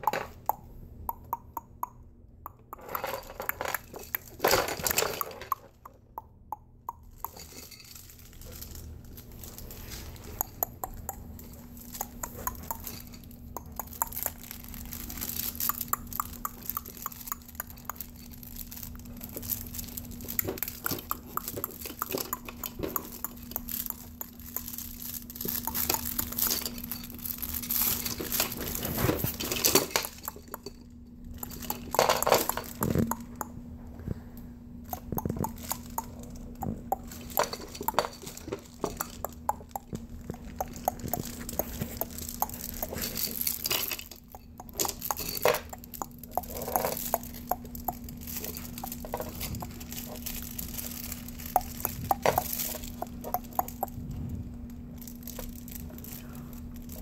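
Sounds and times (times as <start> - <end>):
steady low hum: 0.0 - 57.0
plastic toy clicks and clatters: 2.6 - 6.0, 7.0 - 33.5, 34.9 - 54.0
baby mouthing sounds: 10.3 - 14.5, 38.8 - 43.1, 51.4 - 54.2.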